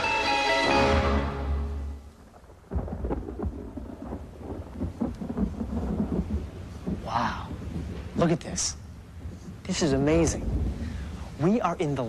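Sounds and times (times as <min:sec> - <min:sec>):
steady rain: 0:00.0 - 0:12.0
thunder rumbling: 0:01.8 - 0:12.0.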